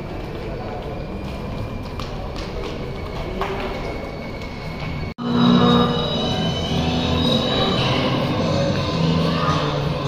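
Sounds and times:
footsteps on tiled floor: 0:00.0 - 0:05.2
indistinct background voices: 0:00.0 - 0:10.0
low hum: 0:00.7 - 0:10.0.

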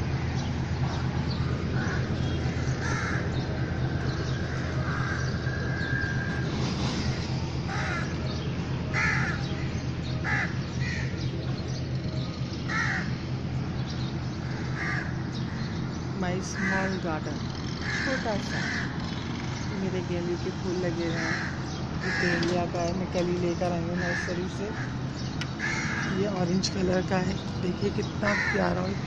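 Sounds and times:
crows cawing: 0:01.7 - 0:03.5, 0:04.5 - 0:05.6, 0:07.0 - 0:08.2, 0:08.9 - 0:09.6, 0:10.2 - 0:11.2, 0:12.7 - 0:13.2, 0:14.4 - 0:15.8, 0:16.5 - 0:17.0, 0:17.7 - 0:19.5, 0:21.1 - 0:22.6, 0:23.9 - 0:26.3, 0:28.2 - 0:29.0.

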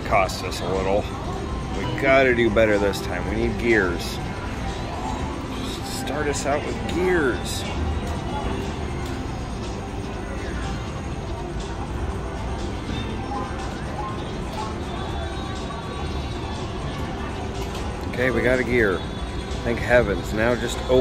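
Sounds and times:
casino hubbub: 0:00.0 - 0:21.0.

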